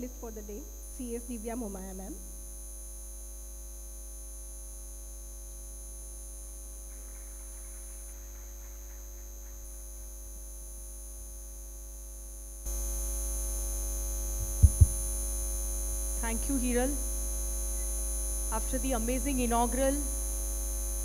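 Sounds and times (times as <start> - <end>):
electrical mains hum: 0.0 - 2.6, 5.4 - 21.0.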